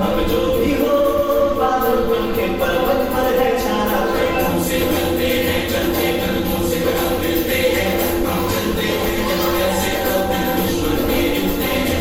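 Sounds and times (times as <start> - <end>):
group of voices singing song: 0.0 - 12.0.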